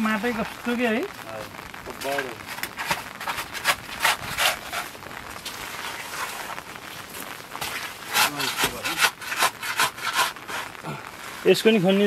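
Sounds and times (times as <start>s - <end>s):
wet mud being scraped: 2.5s - 5.0s, 7.6s - 10.8s.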